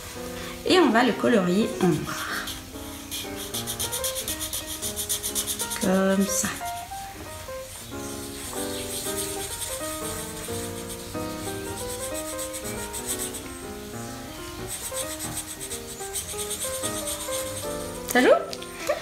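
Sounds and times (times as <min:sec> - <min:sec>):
simple background music: 0:00.0 - 0:19.0
marker scrubbing on paper: 0:02.1 - 0:13.6, 0:14.6 - 0:18.2.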